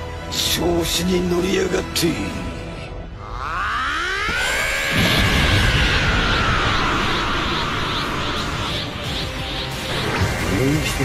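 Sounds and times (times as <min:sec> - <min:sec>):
rising whine: 0:03.1 - 0:10.4.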